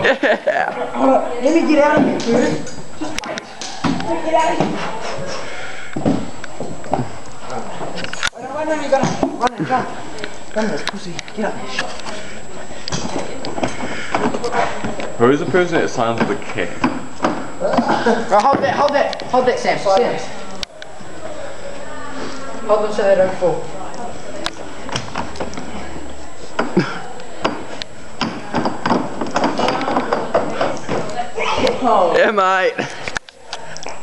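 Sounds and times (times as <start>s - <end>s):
feet landing on stacked chairs: 6.0s - 9.8s, 26.6s - 31.2s
excited voices: 29.5s - 34.0s.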